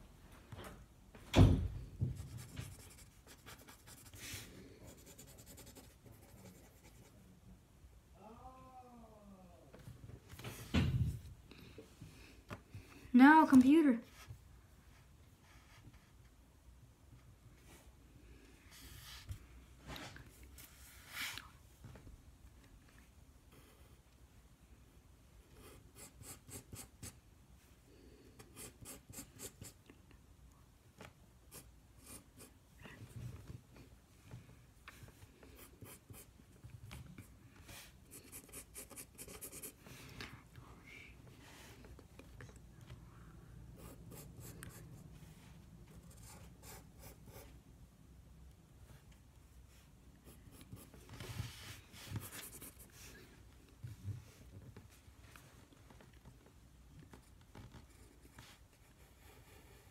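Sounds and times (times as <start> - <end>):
pencil scratching on paper: 2.2 - 7.2, 25.6 - 27.2, 28.4 - 29.8, 31.5 - 32.5, 35.5 - 36.4, 37.2 - 39.8, 43.8 - 44.9, 45.9 - 47.6, 50.2 - 53.1, 57.2 - 59.9.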